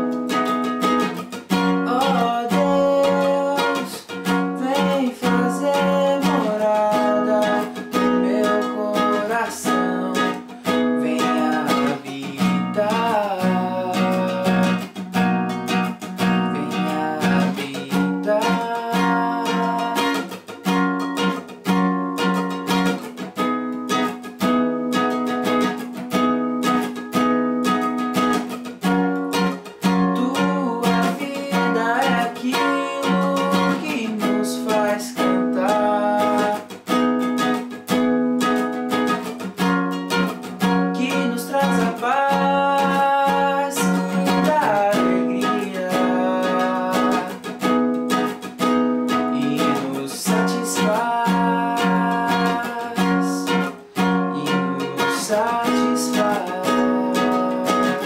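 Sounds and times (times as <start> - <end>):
acoustic guitar strumming: 0.0 - 58.0
man singing: 1.0 - 15.2, 15.8 - 20.6, 29.3 - 37.6, 40.5 - 58.0.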